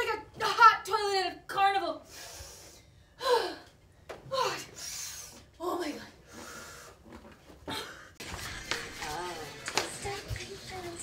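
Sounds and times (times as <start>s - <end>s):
woman gasping: 2.1s - 3.7s.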